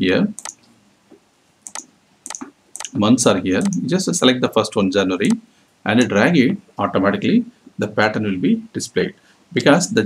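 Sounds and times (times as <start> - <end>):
mouse and keyboard clicks: 0.4 - 0.7, 1.6 - 3.0.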